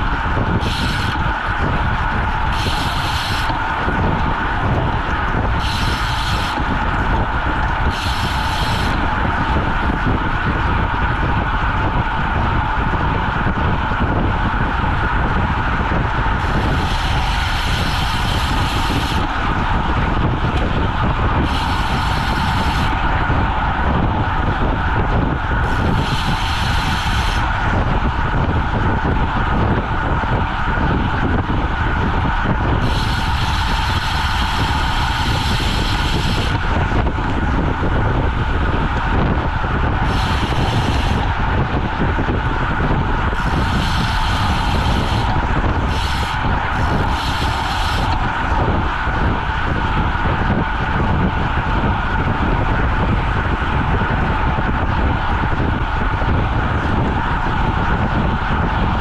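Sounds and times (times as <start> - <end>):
bicycle freehub ratcheting: 0.0 - 59.0
wind rushing over microphone: 0.0 - 59.0.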